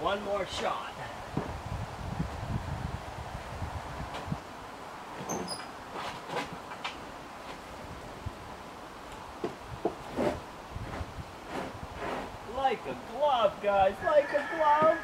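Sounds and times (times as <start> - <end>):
wooden beam knocking and scraping: 9.4 - 12.4.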